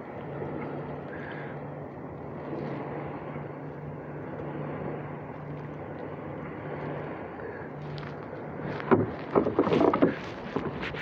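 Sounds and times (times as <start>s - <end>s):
boat motor humming: 0.0s - 11.0s
water noise: 0.0s - 11.0s
wind: 0.0s - 11.0s.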